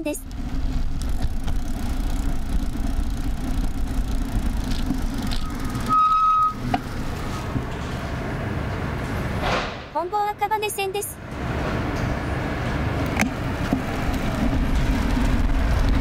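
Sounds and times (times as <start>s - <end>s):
car engine and road rumble: 0.0s - 16.0s.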